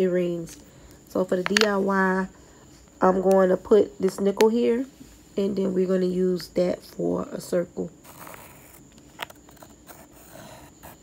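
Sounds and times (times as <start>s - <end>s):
pencil scratching on wood: 9.5s - 11.0s.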